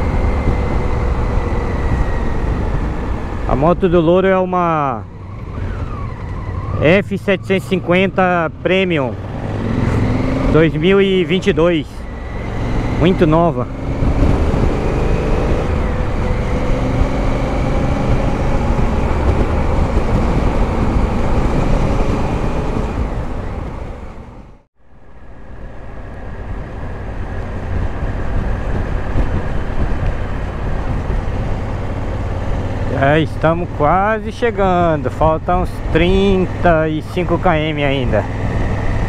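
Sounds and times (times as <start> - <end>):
wind rush: 0.0 - 4.8, 7.7 - 39.0.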